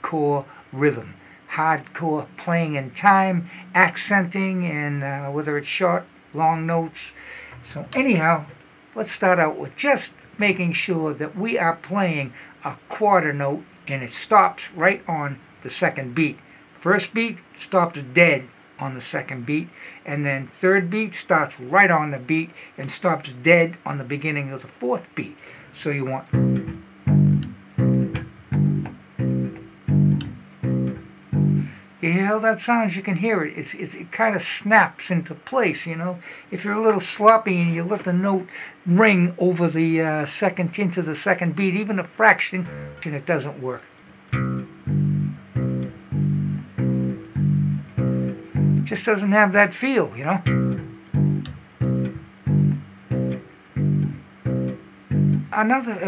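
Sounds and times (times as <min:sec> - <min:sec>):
staccato electric bass notes: 0:26.2 - 0:31.8, 0:42.6 - 0:43.2, 0:44.2 - 0:49.0, 0:50.4 - 0:55.6.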